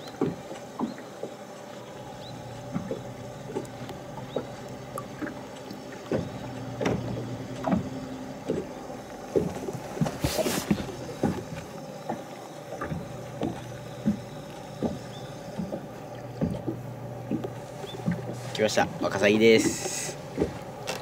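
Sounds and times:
electric motor hum: 0.0s - 21.0s
water slapping against hull: 0.0s - 21.0s.

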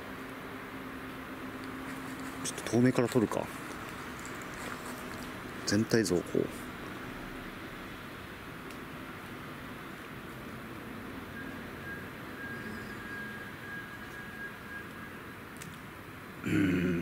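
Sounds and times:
outdoor background hiss: 0.0s - 17.0s
faint high whistle tone: 11.3s - 15.2s.

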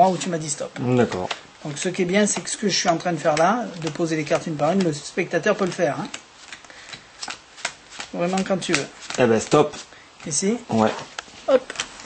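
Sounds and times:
playing cards flicking onto cloth mat: 0.6s - 12.0s.

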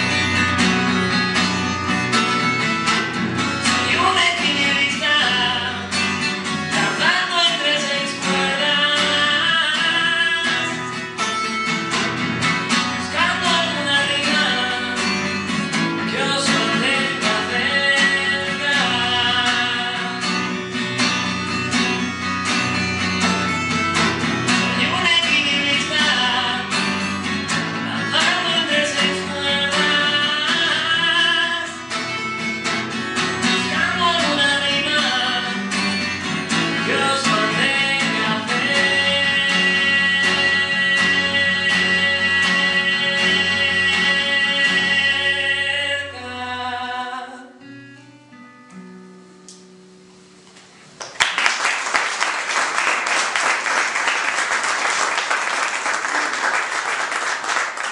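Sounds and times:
acoustic guitar strumming: 0.0s - 51.0s
man singing: 3.6s - 11.6s, 12.8s - 20.6s, 24.5s - 32.3s, 33.3s - 47.7s.

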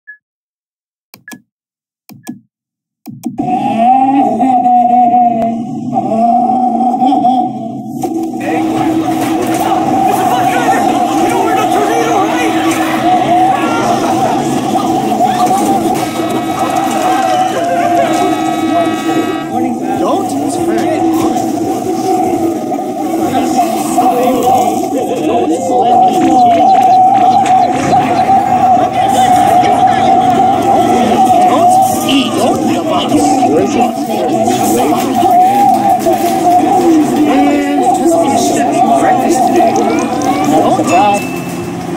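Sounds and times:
sustained two-tone electronic sound: 3.1s - 41.9s
overlapping voices and music: 8.0s - 41.2s
short high beep: 40.9s - 41.7s.

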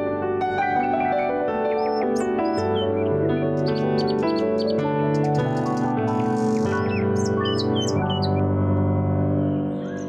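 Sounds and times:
background music of held chords: 0.0s - 10.0s
birds chirping: 0.5s - 8.4s.

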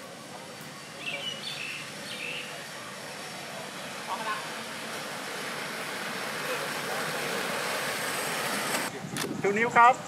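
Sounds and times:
skate wheels rolling on asphalt: 0.0s - 10.0s.

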